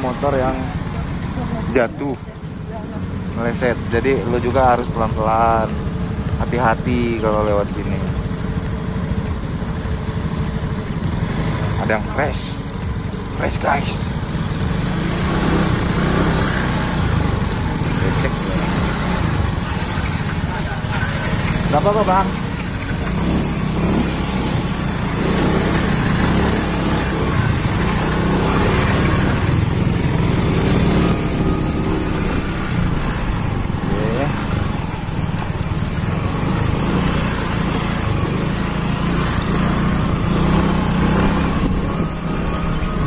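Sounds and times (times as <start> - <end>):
motorcycle engine running: 0.0 - 43.0
riding on rough dirt track: 0.0 - 43.0.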